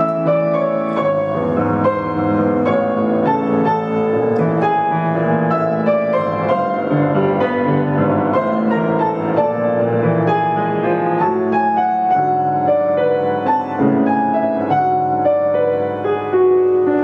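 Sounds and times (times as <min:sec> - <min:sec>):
piano notes: 0:00.0 - 0:17.0.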